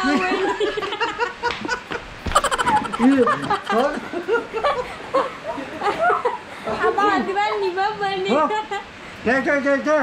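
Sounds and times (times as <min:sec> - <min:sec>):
man laughing: 0:00.1 - 0:06.4.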